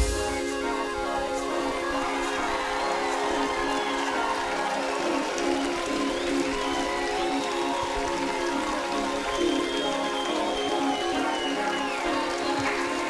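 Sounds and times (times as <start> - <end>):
live band synthesizer music: 0.0 - 3.6.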